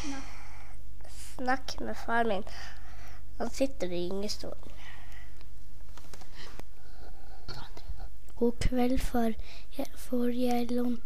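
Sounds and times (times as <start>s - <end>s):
person whispering: 7.2s - 8.1s.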